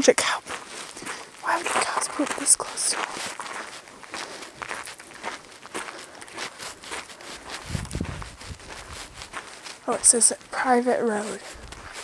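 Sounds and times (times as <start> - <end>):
footsteps on gravel: 0.0 - 12.0.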